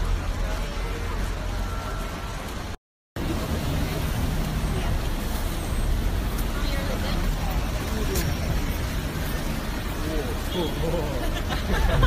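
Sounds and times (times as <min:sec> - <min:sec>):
bus passing: 0:00.0 - 0:12.0
cars passing: 0:00.0 - 0:12.0.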